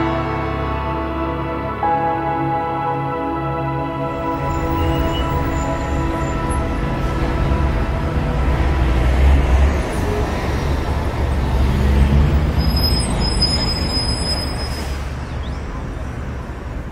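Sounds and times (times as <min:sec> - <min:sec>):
road traffic rumble: 0:00.0 - 0:16.9.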